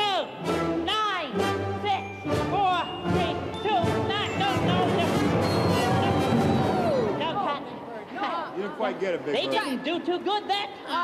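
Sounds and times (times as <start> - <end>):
symphony orchestra playing: 0.4 - 7.2.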